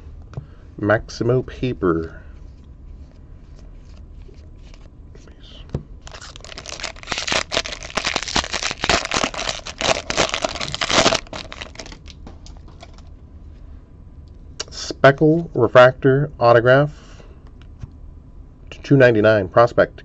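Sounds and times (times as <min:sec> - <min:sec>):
wrapper tearing and crinkling: 0:06.0 - 0:13.0.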